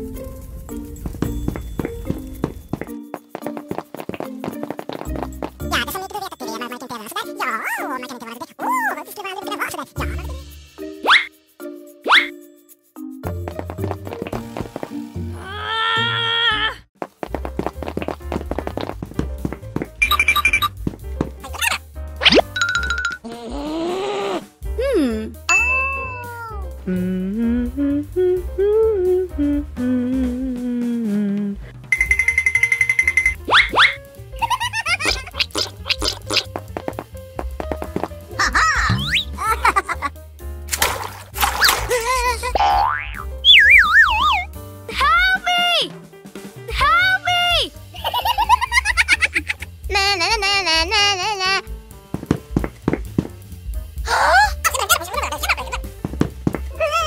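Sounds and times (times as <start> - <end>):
background music with steady bass: 0.0 - 6.2, 17.3 - 23.3, 24.4 - 57.0
rapid light tapping footsteps: 1.0 - 6.2, 13.3 - 15.0, 17.0 - 21.6, 34.4 - 39.0, 51.9 - 53.5, 54.7 - 56.8.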